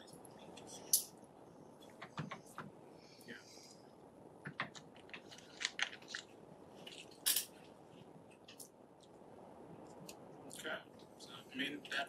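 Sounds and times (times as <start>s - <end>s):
crisp clicks and crackles: 4.4s - 11.1s.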